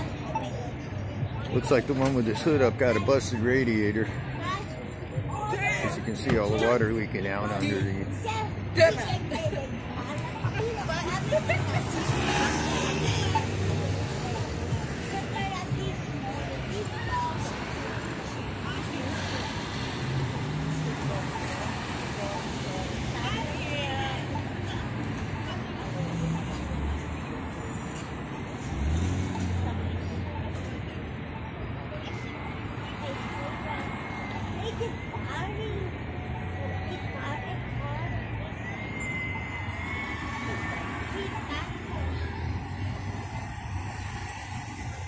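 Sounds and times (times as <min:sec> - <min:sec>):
people talking indistinctly: 0:00.0 - 0:27.8
car traffic passing: 0:00.0 - 0:45.0.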